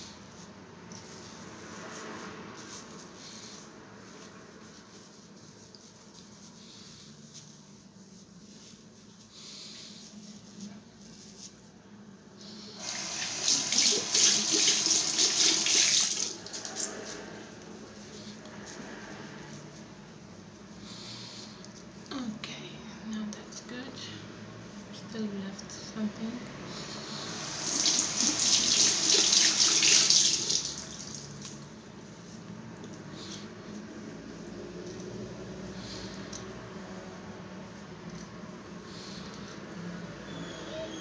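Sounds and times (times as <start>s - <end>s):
water running from sink tap: 12.8s - 16.6s, 27.6s - 31.3s.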